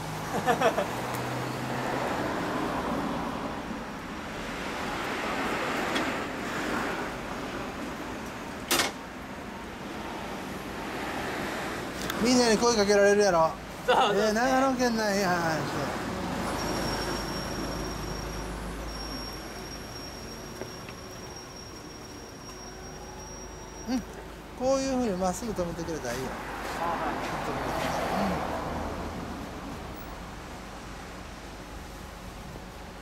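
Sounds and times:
car passing: 0.0 - 8.2, 24.7 - 31.6
road traffic rumble: 0.0 - 33.0.

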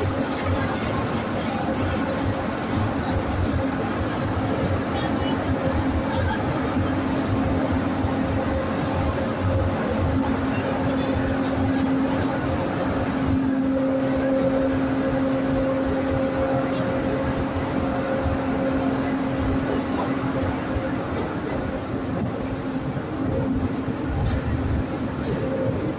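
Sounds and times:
train wheels rumbling on rails: 0.0 - 25.9.

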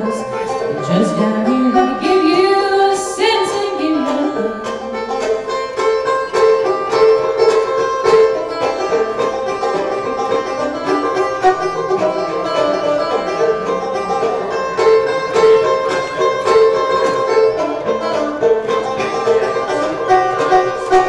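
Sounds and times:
banjo picking fast notes: 0.0 - 21.0
fiddle bowing melody: 0.0 - 21.0.

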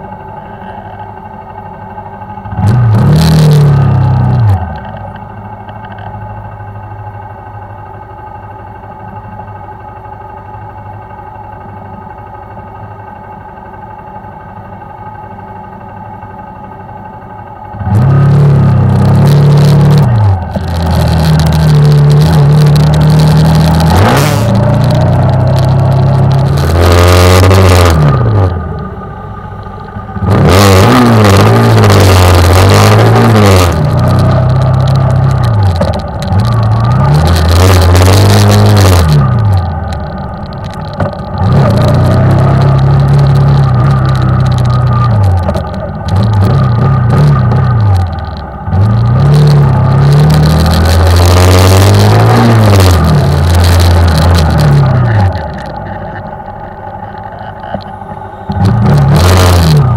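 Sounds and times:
motorcycle engine idling and revving: 0.0 - 59.9.

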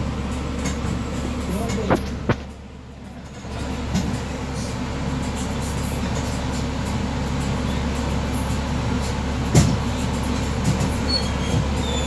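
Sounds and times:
motor vehicle rumbling: 0.0 - 12.0.

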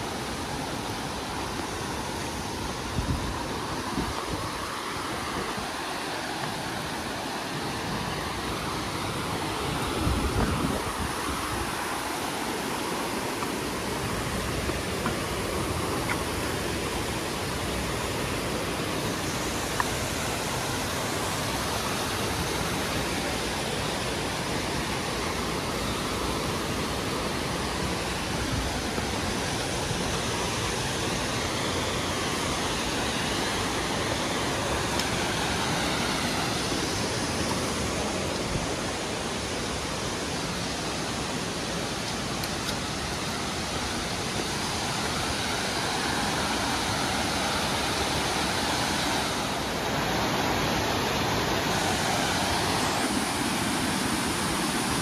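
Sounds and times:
creek rushing over rocks: 0.0 - 55.0.

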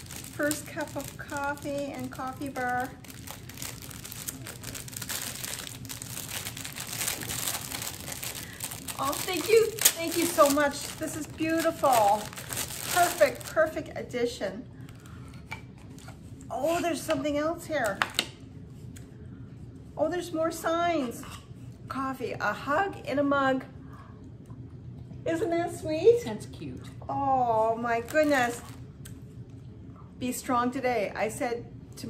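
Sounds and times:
gift wrapping crinkling: 0.0 - 13.8, 28.0 - 28.8.

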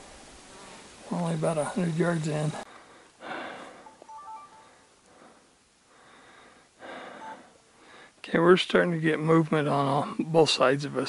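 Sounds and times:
person breathing softly: 0.4 - 1.0, 2.6 - 8.2
faint high chirps: 3.8 - 5.0.

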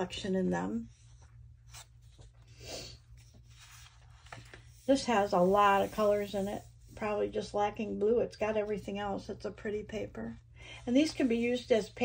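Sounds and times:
paper rustling and rubbing: 0.8 - 7.0.

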